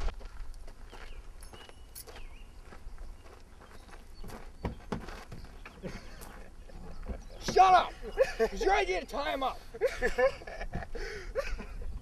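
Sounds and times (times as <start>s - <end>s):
footsteps crunching on gravel: 0.0s - 7.8s.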